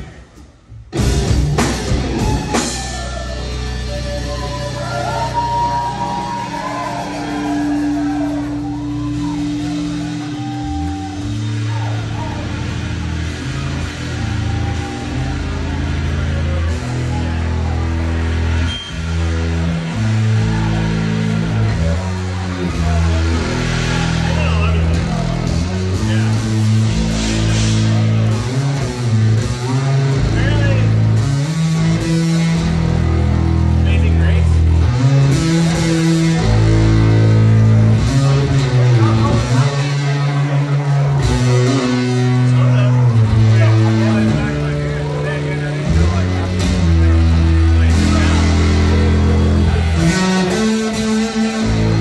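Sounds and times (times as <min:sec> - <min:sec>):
deep bass line: 0:00.0 - 0:52.0
live band playing: 0:00.0 - 0:52.0.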